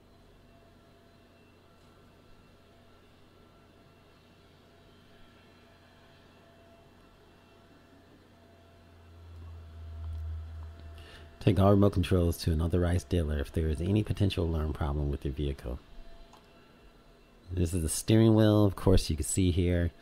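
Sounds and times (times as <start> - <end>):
steady low hum: 0.0 - 20.0
low rumble: 9.1 - 11.0.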